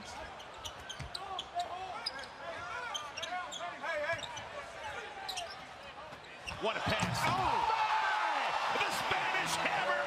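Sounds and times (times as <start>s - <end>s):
sneaker squeaks: 0.4s - 4.6s, 5.2s - 6.6s.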